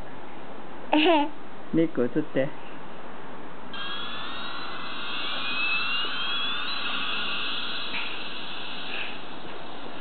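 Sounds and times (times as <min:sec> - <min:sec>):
toy jet engine whine: 0:03.7 - 0:10.0.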